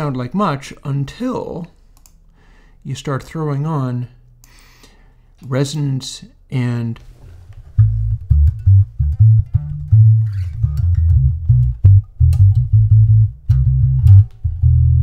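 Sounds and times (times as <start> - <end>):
filtered electric bass riff: 7.6 - 15.0.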